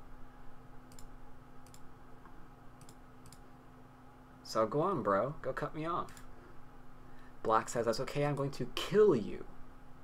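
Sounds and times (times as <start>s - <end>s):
faint steady hum: 0.0s - 10.0s
computer mouse clicking: 0.9s - 1.9s, 2.8s - 3.4s.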